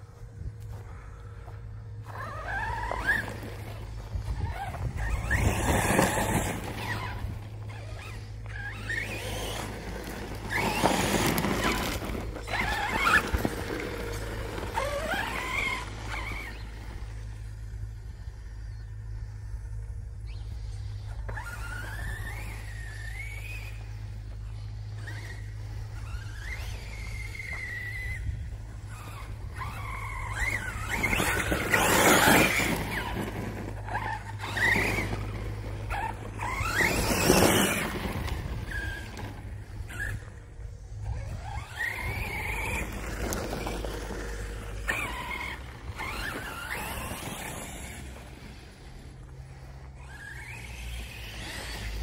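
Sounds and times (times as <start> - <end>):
electric motor whining: 0.0 - 52.0.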